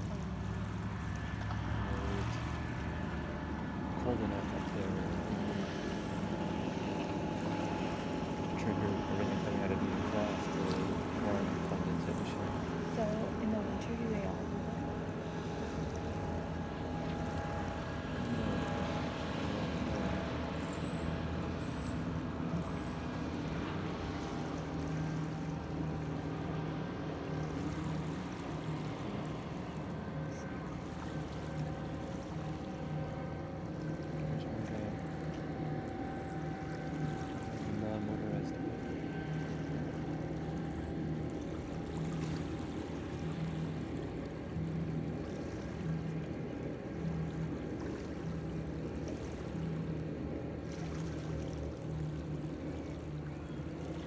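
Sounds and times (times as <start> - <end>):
small waves lapping on shore: 0.0 - 54.0
steady low hum: 0.0 - 54.0.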